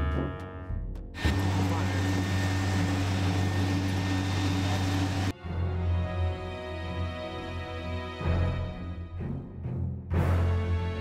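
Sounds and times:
low machine hum: 0:01.2 - 0:05.3.

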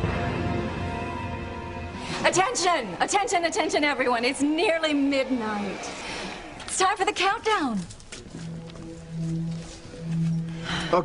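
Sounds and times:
dramatic underscore low notes: 0:00.0 - 0:11.0.

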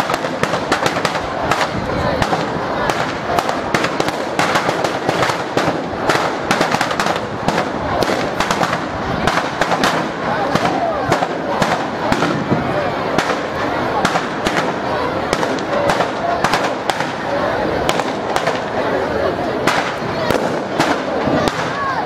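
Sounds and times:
crowd voices: 0:00.0 - 0:22.0
firecrackers cracking and banging: 0:00.0 - 0:22.0.

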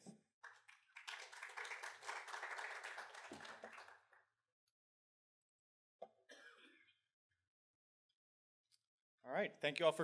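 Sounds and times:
person coughing: 0:06.3 - 0:07.0.

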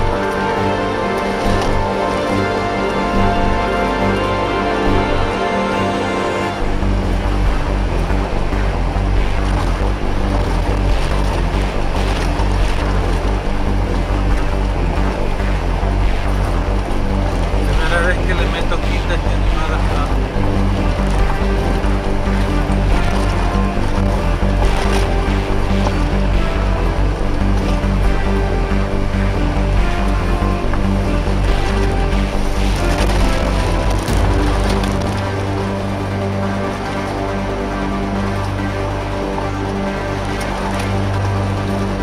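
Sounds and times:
music: 0:00.0 - 0:42.0
tyres rumbling on gravel: 0:00.0 - 0:42.0
car engine: 0:06.6 - 0:41.8.

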